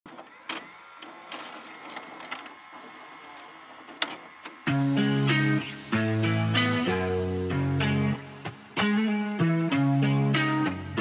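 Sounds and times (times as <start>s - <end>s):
hissing static: 0.1s - 10.7s.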